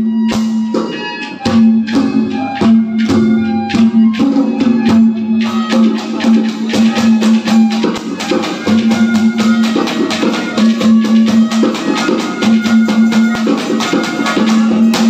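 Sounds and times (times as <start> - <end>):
drums and percussion fast beat: 0.0 - 15.0.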